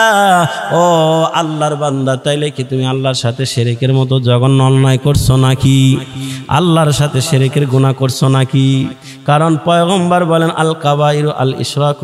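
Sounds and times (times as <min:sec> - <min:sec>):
man chanting a sermon: 0:00.0 - 0:12.0.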